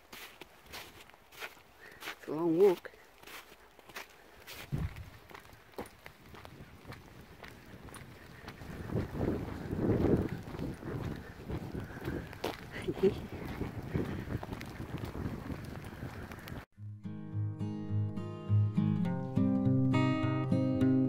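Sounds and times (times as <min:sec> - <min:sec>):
footsteps crunching: 0:00.0 - 0:16.7
wind buffeting microphone: 0:04.5 - 0:16.7.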